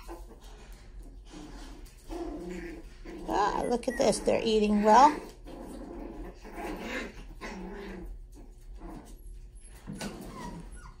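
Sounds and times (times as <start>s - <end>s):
puppies play-growling: 0.0s - 11.0s.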